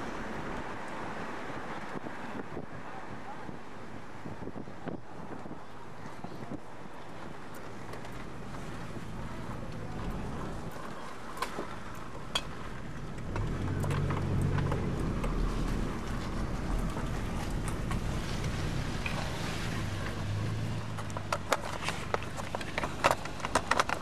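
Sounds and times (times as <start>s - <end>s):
road noise: 0.0s - 24.0s
vehicle engine hum: 0.0s - 24.0s.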